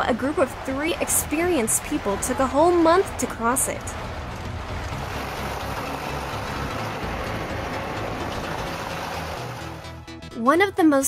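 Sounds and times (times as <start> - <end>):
vehicle rumbling over wooden bridge: 0.0 - 10.1.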